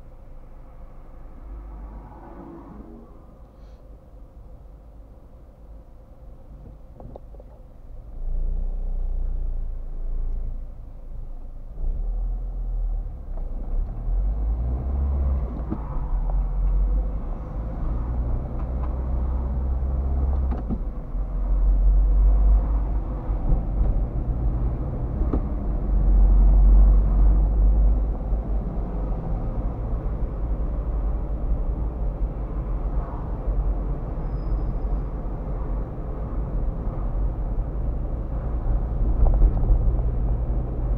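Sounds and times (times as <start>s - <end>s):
car engine and road rumble: 0.0s - 40.9s.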